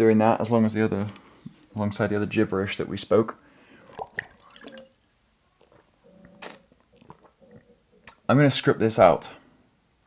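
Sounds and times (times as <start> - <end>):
man swallowing drink: 3.8 - 5.0, 5.6 - 8.2.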